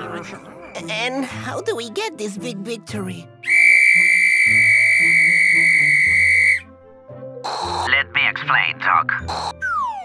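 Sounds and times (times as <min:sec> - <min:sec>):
soft background music: 0:00.0 - 0:10.0
shrill whistle blast: 0:03.4 - 0:06.7.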